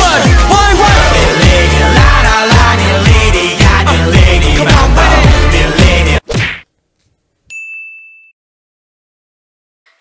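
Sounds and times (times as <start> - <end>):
high bell-like ding: 7.5 - 8.4.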